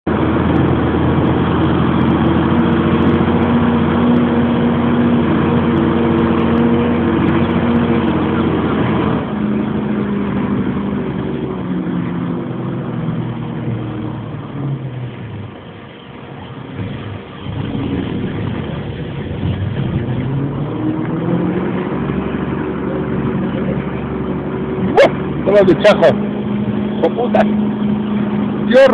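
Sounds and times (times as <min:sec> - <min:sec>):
truck engine running: 0:00.1 - 0:28.9.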